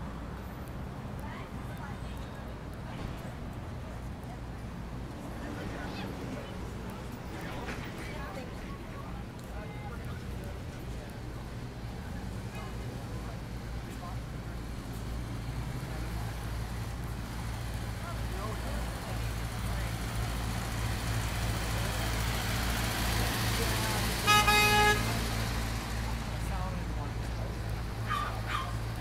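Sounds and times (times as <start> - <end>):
city street traffic: 0.0 - 29.0
car horn honk: 24.2 - 25.3.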